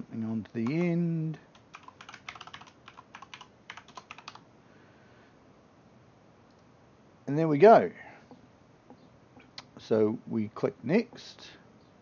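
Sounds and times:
computer keyboard typing: 0.6s - 0.9s, 1.5s - 4.4s.

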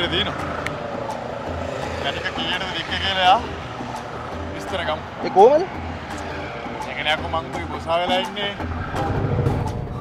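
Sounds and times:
vehicle passing by: 0.0s - 7.6s.

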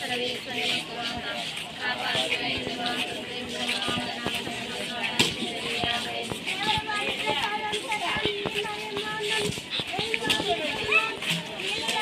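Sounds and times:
crowd talking: 0.0s - 12.0s
children calling out: 6.5s - 12.0s.

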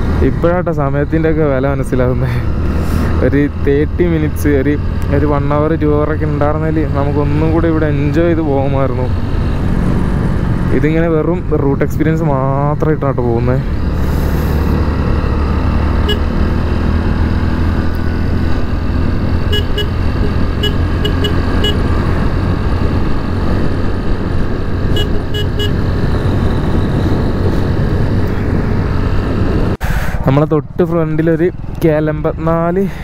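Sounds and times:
motorcycle engine running: 13.7s - 29.6s.

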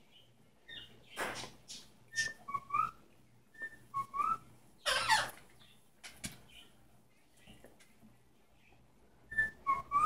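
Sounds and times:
parrot whistling: 2.1s - 5.3s, 9.3s - 10.0s
parrot harsh squawk: 4.8s - 5.4s.

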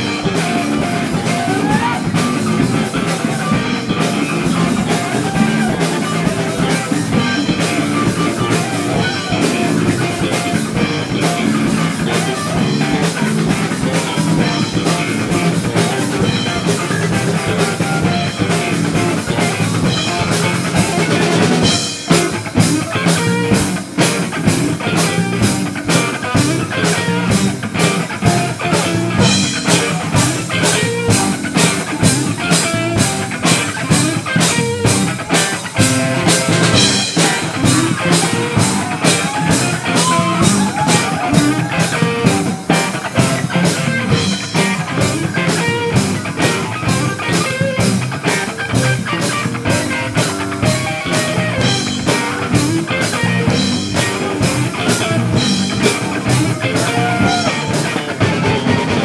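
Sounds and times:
driving drum beat: 0.0s - 59.0s
live rock band playing: 0.0s - 59.0s.

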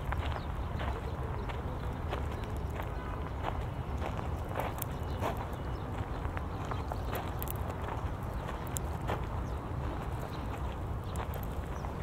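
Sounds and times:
footsteps on sandy stony ground: 0.0s - 12.0s
steady low rumble: 0.0s - 12.0s.

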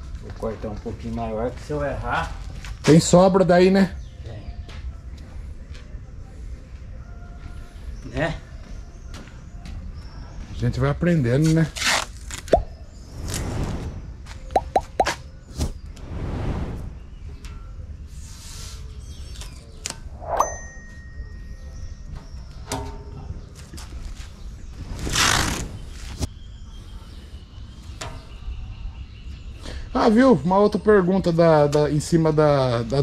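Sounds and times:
metallic ding: 20.2s - 21.9s.

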